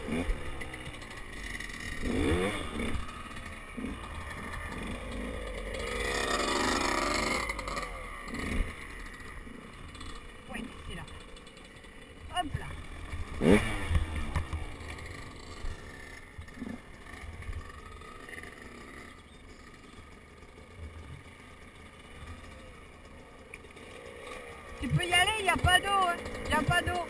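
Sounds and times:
dirt bike engines running: 0:00.0 - 0:27.0.

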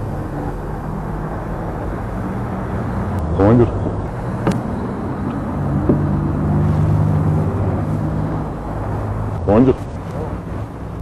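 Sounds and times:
car engine hum from inside: 0:00.0 - 0:11.0.

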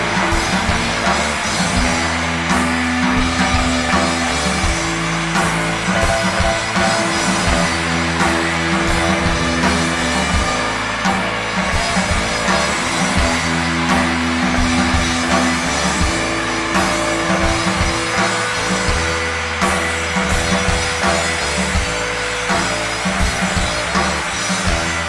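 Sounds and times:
bass guitar: 0:00.0 - 0:25.0
distorted electric guitars: 0:00.0 - 0:25.0
drum kit: 0:00.0 - 0:25.0.

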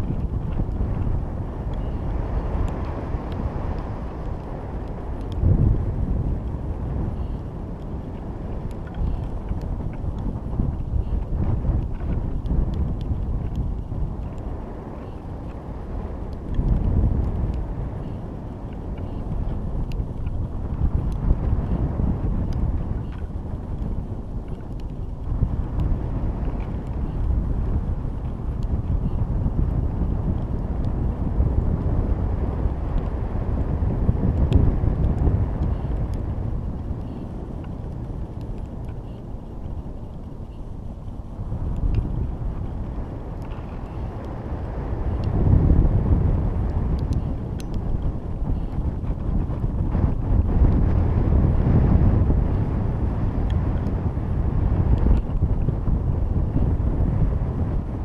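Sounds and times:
faint ticks: 0:00.0 - 0:05.5, 0:06.4 - 0:15.6, 0:34.3 - 0:45.4, 0:46.5 - 0:51.0
wind buffeting microphone: 0:00.0 - 0:58.0.

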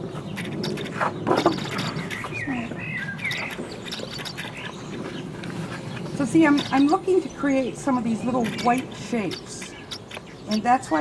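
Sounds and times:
outdoor background noise: 0:00.0 - 0:11.0
small birds chirping: 0:00.0 - 0:11.0.

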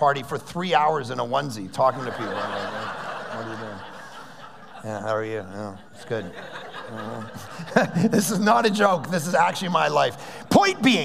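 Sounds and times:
audience laughing: 0:01.7 - 0:11.0.

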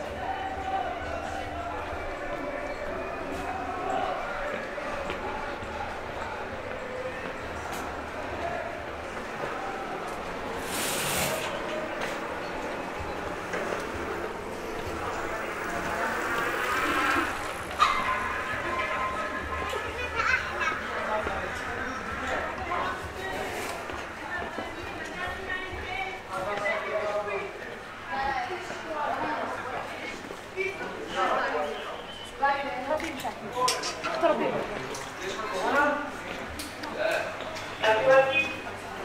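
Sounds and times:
moped passing: 0:12.8 - 0:20.2.

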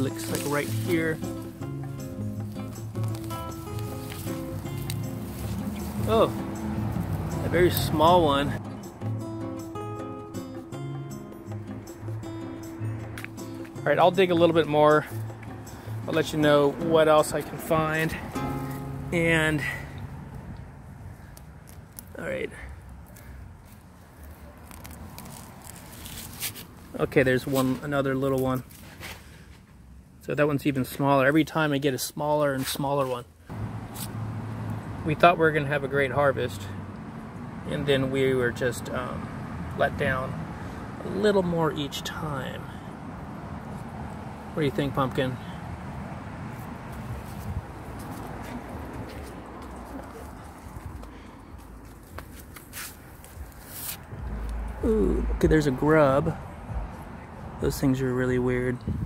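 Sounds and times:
hands rummaging through soil: 0:00.0 - 0:07.9
rustles and clicks: 0:02.4 - 0:06.1
steady low rumble: 0:53.3 - 0:57.8.

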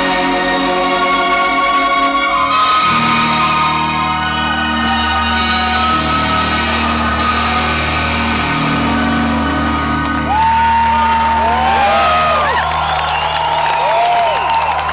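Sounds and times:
rock band sustained chord: 0:00.0 - 0:13.7
crowd cheering: 0:01.8 - 0:14.9
crowd whistles and whoops: 0:02.4 - 0:14.9.

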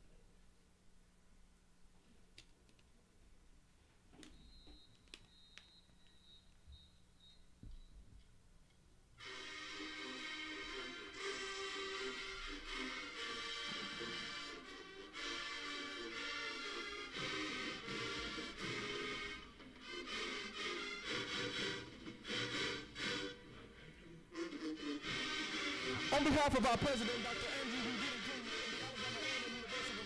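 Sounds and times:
marching band playing chords: 0:24.4 - 0:30.0.

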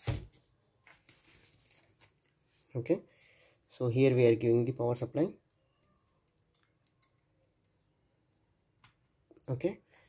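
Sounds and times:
handling rustle: 0:00.0 - 0:02.8.

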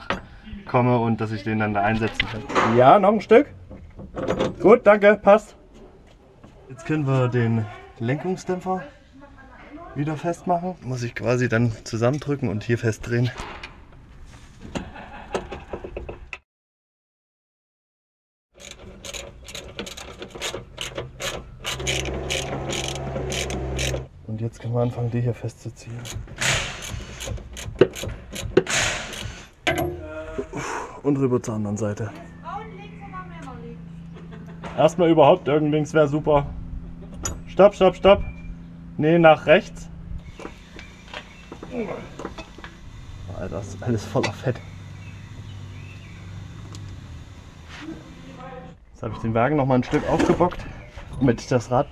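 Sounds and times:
ratchet wrench clicking: 0:18.6 - 0:24.0, 0:26.0 - 0:29.9
steady low hum: 0:21.2 - 0:49.0.

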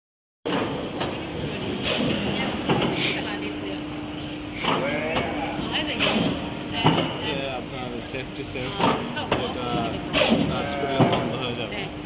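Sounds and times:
indistinct talking: 0:01.1 - 0:12.0.

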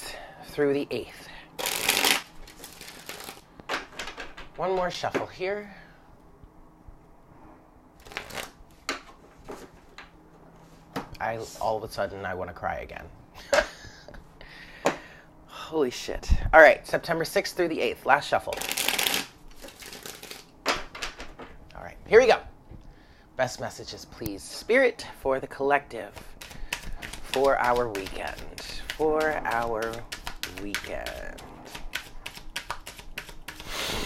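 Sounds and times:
cards shuffling: 0:01.6 - 0:04.4, 0:08.0 - 0:10.0, 0:18.5 - 0:20.5, 0:26.1 - 0:34.0.

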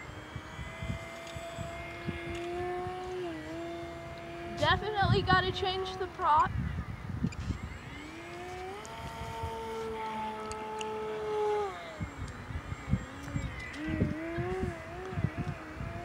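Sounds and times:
model plane motor whining: 0:00.0 - 0:16.0
wind rumble on microphone: 0:00.0 - 0:16.0.

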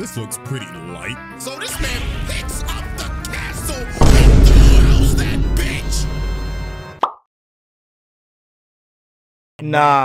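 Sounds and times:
soundtrack music: 0:01.4 - 0:07.0
deep rumbling effect: 0:03.9 - 0:06.7.

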